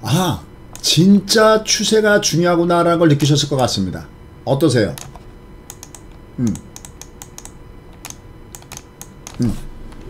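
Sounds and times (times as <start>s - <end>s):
computer keyboard typing: 5.0s - 10.0s
man murmuring: 6.4s - 6.7s, 9.4s - 9.7s.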